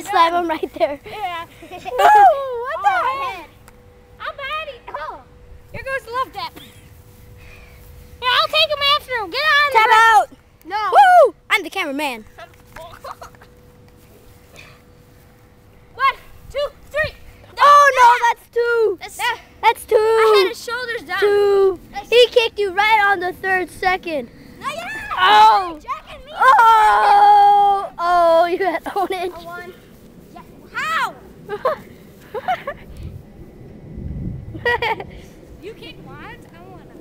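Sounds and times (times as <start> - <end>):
child squealing with laughter: 1.9 - 2.6
low rumbling noise: 18.8 - 37.0
child's high-pitched exclamation: 24.6 - 28.2.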